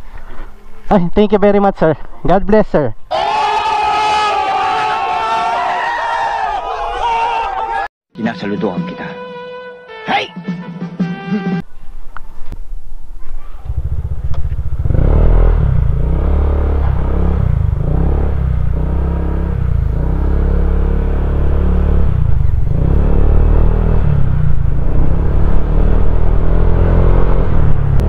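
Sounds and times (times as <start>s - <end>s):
scooter engine accelerating: 13.5s - 28.0s.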